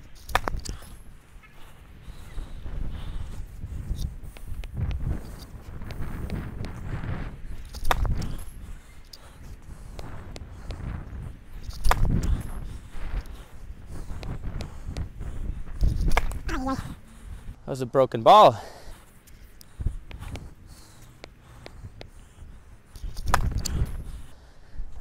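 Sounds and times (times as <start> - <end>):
wind rumble on microphone: 0.0 - 17.6, 19.7 - 25.0.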